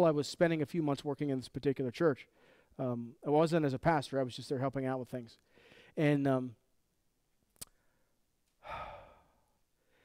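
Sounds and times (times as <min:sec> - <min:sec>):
man sighing: 0:08.6 - 0:09.6.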